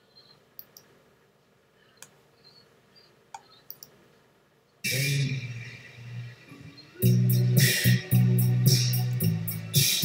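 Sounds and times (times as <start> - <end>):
faint short clicks: 3.3 - 4.0.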